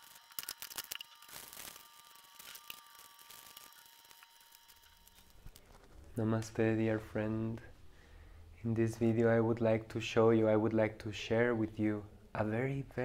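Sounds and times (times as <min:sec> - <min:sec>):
plastic wrappers crackling: 0:00.0 - 0:06.2.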